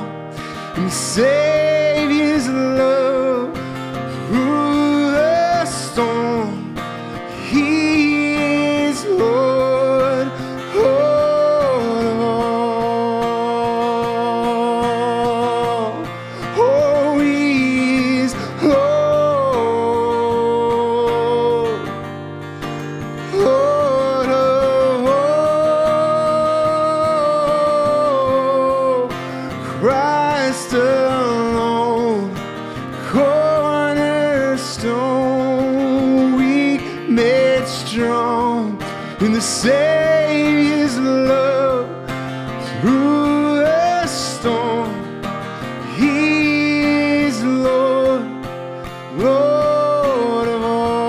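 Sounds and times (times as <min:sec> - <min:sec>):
man singing worship song: 0:00.0 - 0:22.0, 0:23.2 - 0:48.5, 0:49.1 - 0:51.0
strummed acoustic guitar: 0:00.0 - 0:51.0.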